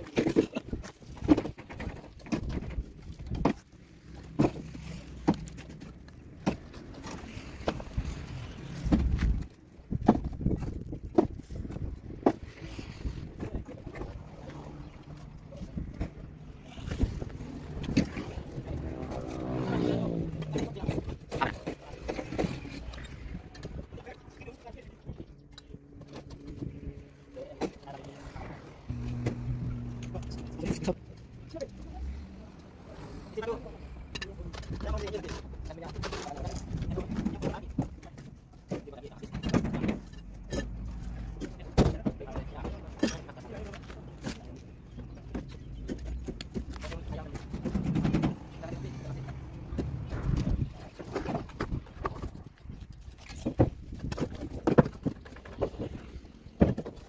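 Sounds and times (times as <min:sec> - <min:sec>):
motor vehicle running: 0:12.2 - 0:23.7, 0:24.3 - 0:38.0, 0:39.5 - 0:52.5
voices: 0:13.4 - 0:51.4.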